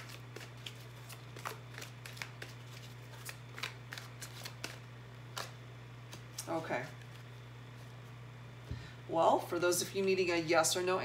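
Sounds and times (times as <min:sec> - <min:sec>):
cards shuffling: 0:00.0 - 0:08.0
low steady hum: 0:00.0 - 0:11.0.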